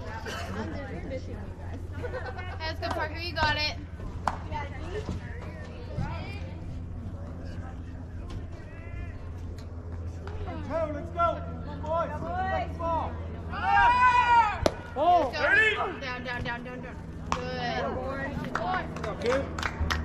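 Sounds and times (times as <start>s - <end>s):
steady low hum: 0.0s - 20.0s
people shouting: 13.5s - 16.0s.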